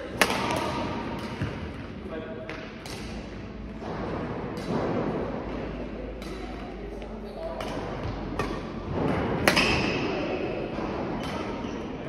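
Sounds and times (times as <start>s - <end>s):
rackets hitting shuttlecock: 0.0s - 1.8s, 2.5s - 6.8s, 7.5s - 11.8s.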